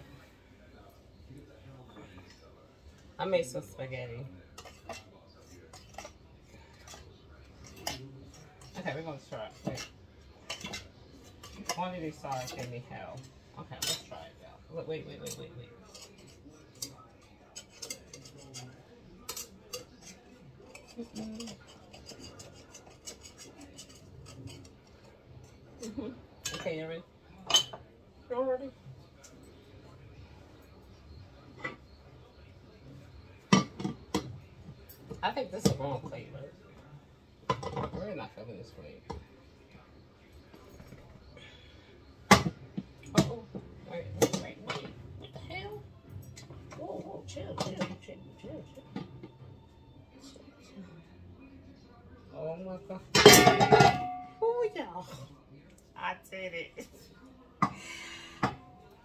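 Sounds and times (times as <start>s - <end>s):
metal pan clattering: 53.1s - 54.4s.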